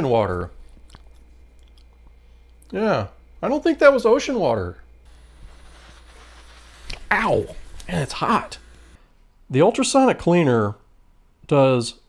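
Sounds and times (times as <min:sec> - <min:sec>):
hot air blowing hiss: 0:05.1 - 0:09.0.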